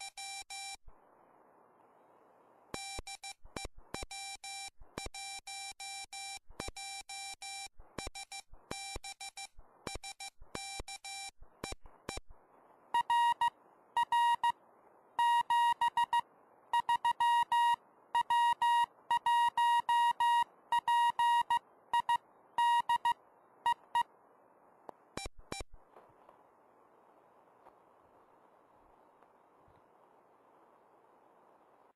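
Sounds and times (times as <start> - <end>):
high-pitched morse code signal: 2.8 - 12.3, 13.0 - 14.6, 15.2 - 16.2, 16.8 - 24.1
low-pitched morse code tone: 2.8 - 12.3, 13.0 - 14.6, 15.2 - 16.2, 16.8 - 24.1.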